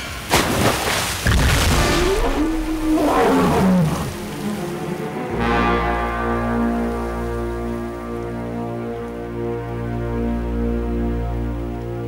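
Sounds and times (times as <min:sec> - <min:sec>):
deep roar falling in pitch: 0:02.0 - 0:04.8
sustained music: 0:02.8 - 0:12.0.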